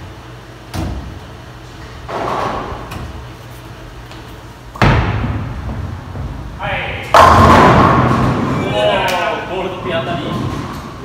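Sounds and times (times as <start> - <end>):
bowling pins crashing: 4.7 - 9.0
bowling ball rolling on lane: 5.1 - 8.9.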